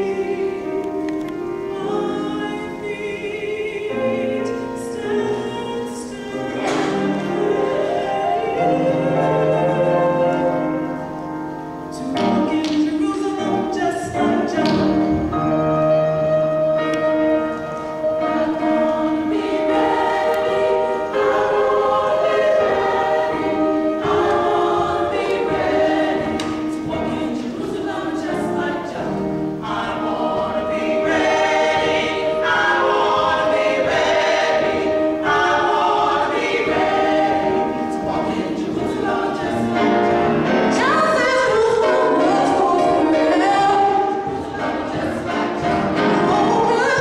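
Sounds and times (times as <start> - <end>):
group singing gospel song: 0.0 - 47.0.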